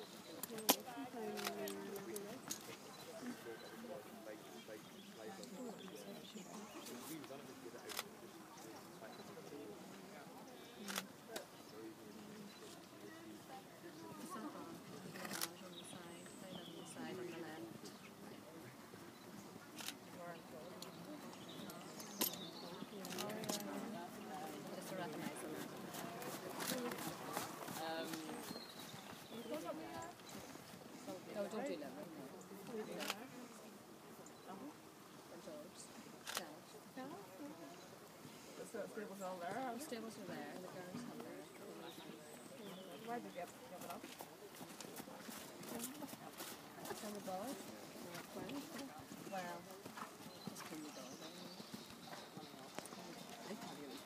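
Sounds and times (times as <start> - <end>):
faint voices: 0.0 - 54.0
people talking: 0.4 - 19.2, 19.8 - 33.7, 38.6 - 54.0
horse hoofbeats trotting on sand: 20.6 - 31.6, 42.7 - 54.0
horse hoofbeats on sand: 24.8 - 30.5.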